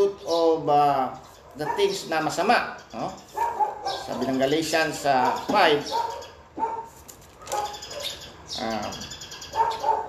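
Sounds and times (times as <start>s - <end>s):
thin pages rustling: 6.9s - 7.8s.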